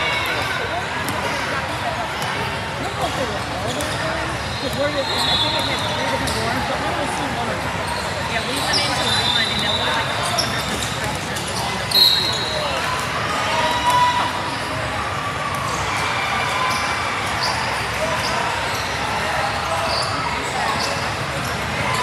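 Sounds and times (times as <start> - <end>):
sneakers squeaking: 0.0 - 14.2, 15.5 - 22.0
chatter of spectators: 0.0 - 22.0.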